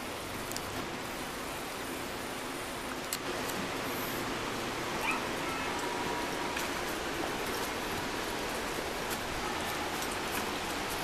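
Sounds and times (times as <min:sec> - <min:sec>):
steady rushing background: 0:00.0 - 0:11.0
dog whining: 0:05.0 - 0:05.7.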